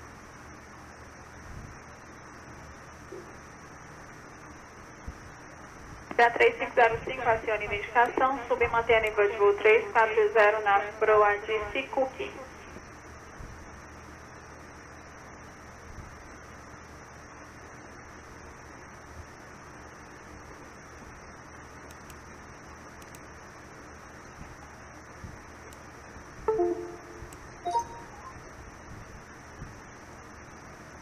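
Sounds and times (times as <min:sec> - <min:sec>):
radio hiss and hum: 0:06.0 - 0:12.9.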